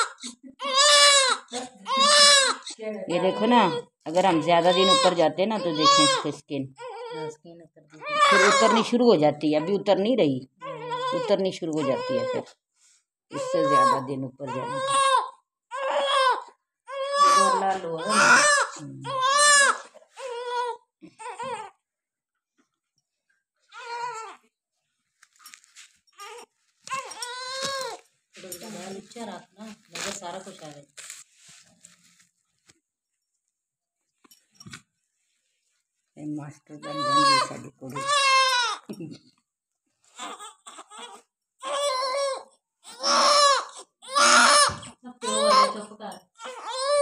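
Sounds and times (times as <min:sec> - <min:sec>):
baby whimpering: 0:00.0 - 0:07.4, 0:08.0 - 0:08.9, 0:10.6 - 0:12.5, 0:13.4 - 0:21.8, 0:23.7 - 0:24.4, 0:26.2 - 0:28.0, 0:40.2 - 0:47.0
newborn baby crying: 0:00.0 - 0:07.4, 0:08.0 - 0:12.6, 0:13.3 - 0:21.8, 0:23.7 - 0:24.5, 0:26.1 - 0:28.1, 0:36.8 - 0:38.9, 0:40.1 - 0:47.0.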